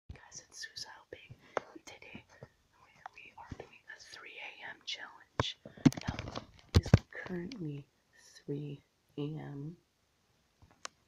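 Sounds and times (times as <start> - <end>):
person whispering: 0.1 - 9.8.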